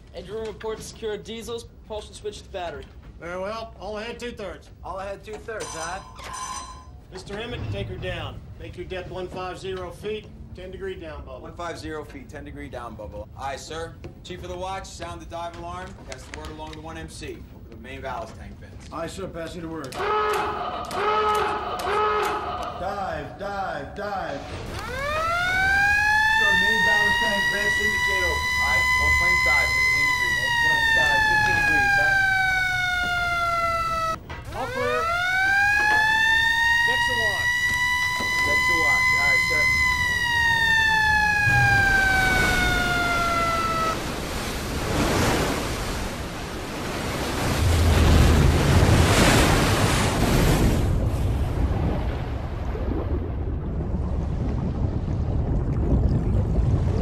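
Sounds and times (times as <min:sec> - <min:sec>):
dive alarm siren wailing: 0:24.7 - 0:44.5
air and water rushing: 0:36.1 - 0:57.0.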